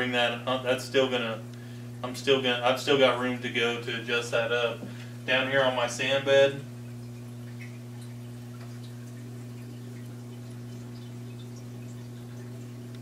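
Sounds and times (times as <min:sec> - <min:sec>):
low electrical hum: 0:00.0 - 0:13.0
water dripping and trickling: 0:04.9 - 0:13.0.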